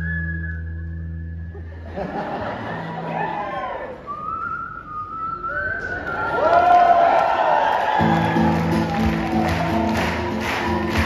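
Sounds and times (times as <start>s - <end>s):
person whistling: 0.0s - 1.4s, 4.0s - 6.3s.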